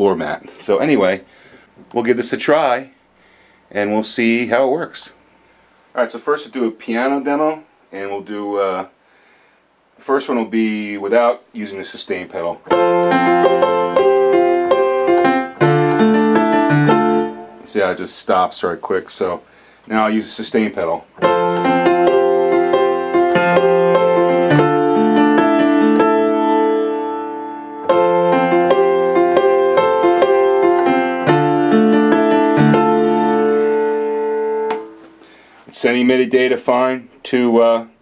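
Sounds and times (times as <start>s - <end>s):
piano chords: 12.6s - 18.0s, 21.1s - 35.3s.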